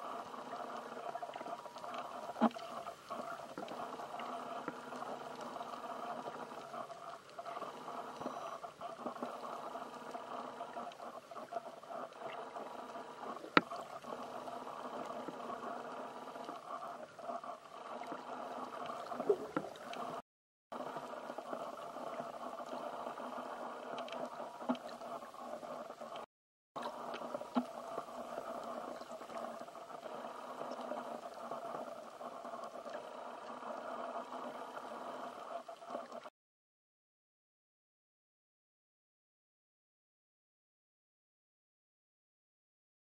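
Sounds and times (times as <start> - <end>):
muffled underwater hum: 0.0 - 20.2, 20.8 - 36.3.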